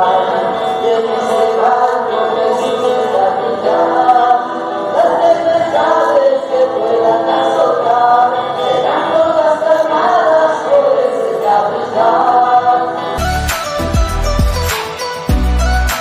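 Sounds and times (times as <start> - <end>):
choir singing a hymn: 0.0 - 13.2.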